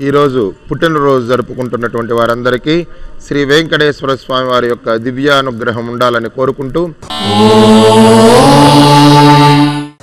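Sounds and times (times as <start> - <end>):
man chanting a held note: 7.0 - 10.0.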